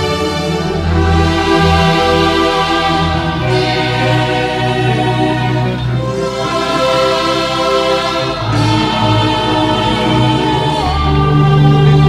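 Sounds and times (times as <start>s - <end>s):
choir singing a slow hymn: 0.0s - 12.0s.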